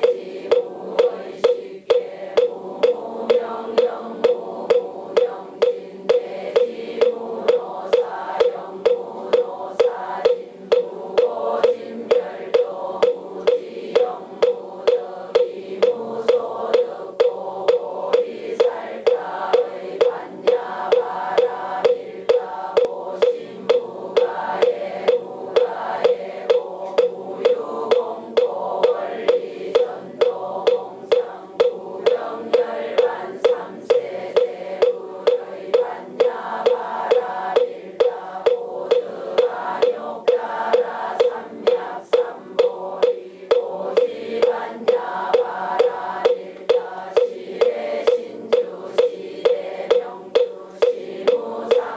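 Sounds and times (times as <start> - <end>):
congregation chanting in unison: 0.0 - 51.9
wooden fish knocking: 0.0 - 51.9.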